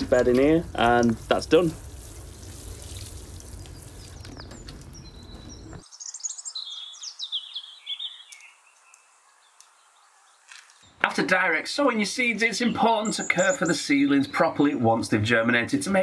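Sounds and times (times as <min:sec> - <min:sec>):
water spraying onto soil: 0:00.0 - 0:05.4
bird chirping: 0:02.5 - 0:11.2, 0:11.8 - 0:15.3.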